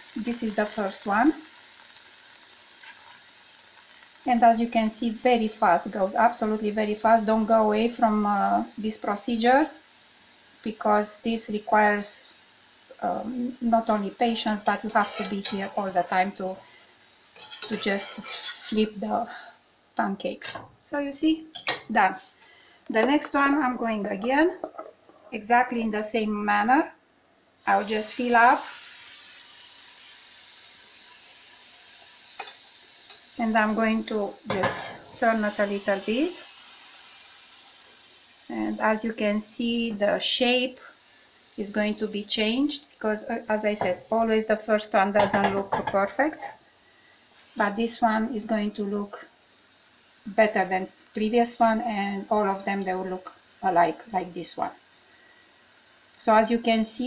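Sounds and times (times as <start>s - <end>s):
batter sizzling in skillet: 0.0s - 25.8s, 27.6s - 57.0s.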